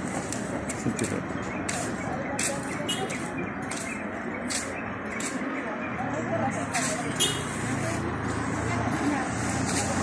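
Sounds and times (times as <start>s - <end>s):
crowd chatter: 0.0s - 10.0s
street traffic rumble: 0.0s - 10.0s.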